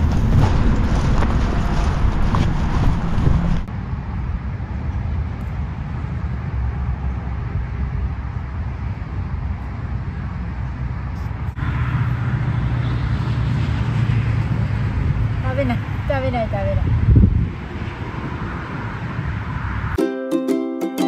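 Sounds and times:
road traffic noise: 0.0s - 21.0s.

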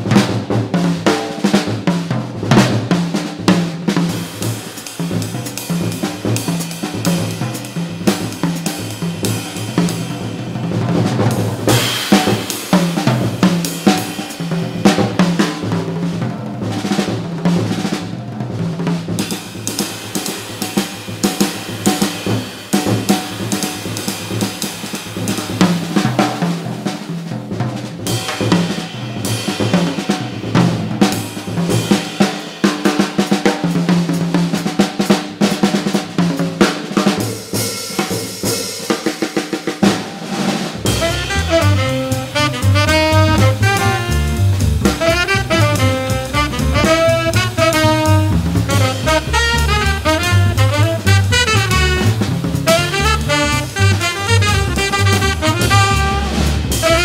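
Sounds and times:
jazz drum kit solo: 0.0s - 57.0s
saxophones playing: 40.9s - 57.0s.

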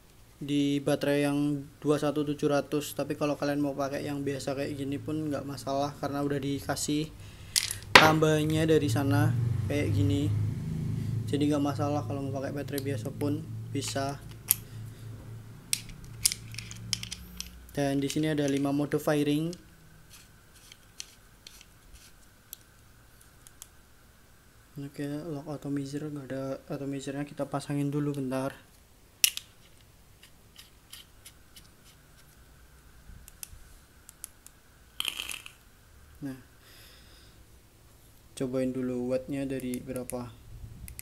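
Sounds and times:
small metallic clicks and scraping: 15.7s - 18.7s, 19.5s - 23.7s, 29.2s - 32.4s, 33.2s - 35.7s.

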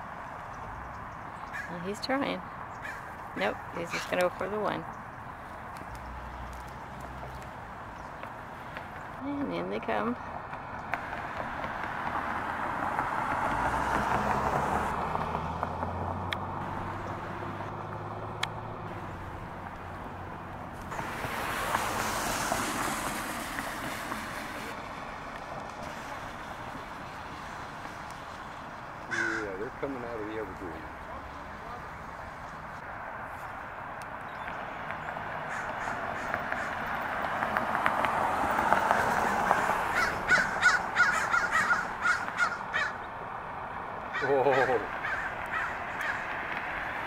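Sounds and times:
cars passing by: 0.0s - 47.0s
crows cawing: 1.4s - 1.9s, 2.8s - 4.2s, 29.1s - 29.9s, 35.4s - 37.3s, 38.8s - 43.1s, 44.0s - 46.9s.

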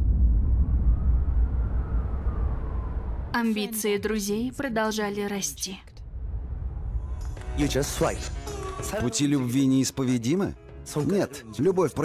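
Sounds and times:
faint tone gliding downward: 0.0s - 3.4s
low rumbling drone: 0.0s - 8.8s.

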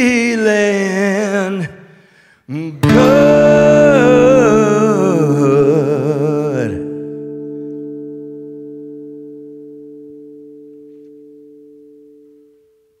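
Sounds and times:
acoustic guitar chord ringing: 2.8s - 13.0s.

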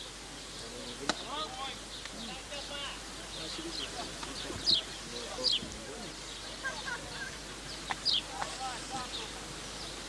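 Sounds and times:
faint background voices: 0.4s - 10.0s.

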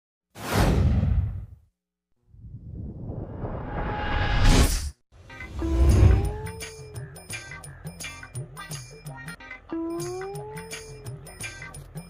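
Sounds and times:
whoosh with deep rumble: 2.3s - 5.0s.

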